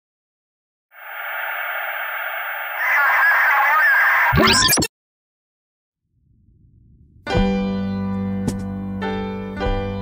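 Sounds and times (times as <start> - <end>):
static hiss: 1.0 - 4.3.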